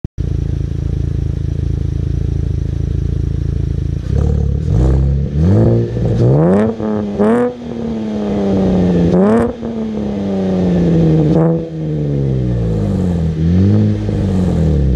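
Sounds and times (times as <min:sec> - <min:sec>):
car engine idling and revving: 0:00.2 - 0:14.9.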